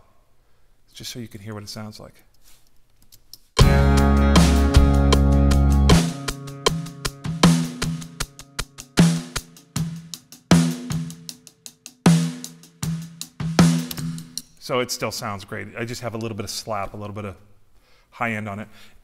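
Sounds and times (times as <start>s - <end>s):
drum groove: 3.6s - 14.7s.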